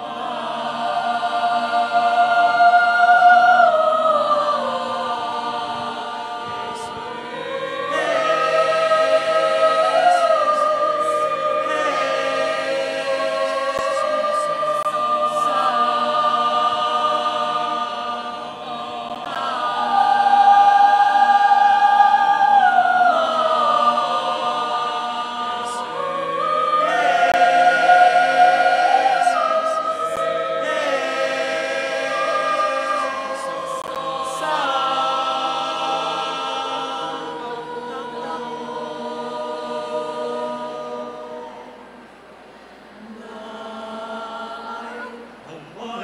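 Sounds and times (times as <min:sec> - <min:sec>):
choir singing a cappella: 0:00.0 - 0:46.0.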